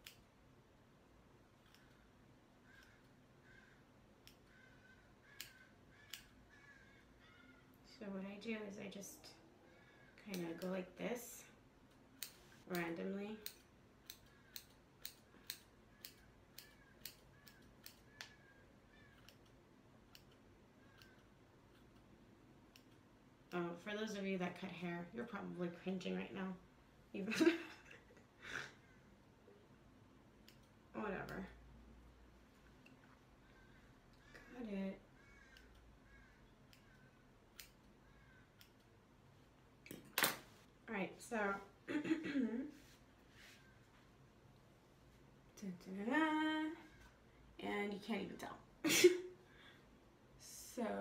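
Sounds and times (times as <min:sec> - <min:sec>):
faint bird calls: 0:02.6 - 0:07.8, 0:33.4 - 0:38.8
scissors snipping hair: 0:10.3 - 0:10.9, 0:11.9 - 0:18.4, 0:19.1 - 0:22.1, 0:36.7 - 0:37.9.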